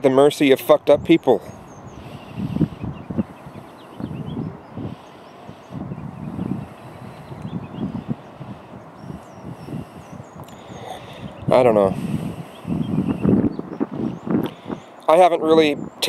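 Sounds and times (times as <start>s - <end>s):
wind buffeting microphone: 0.0s - 16.0s
faint bird chirps: 1.2s - 11.6s, 12.4s - 15.0s.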